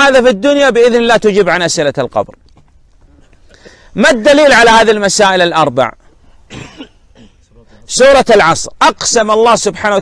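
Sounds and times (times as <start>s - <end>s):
man speaking: 0.0s - 2.4s, 3.9s - 6.1s, 7.2s - 10.0s
man clearing throat: 6.5s - 7.5s.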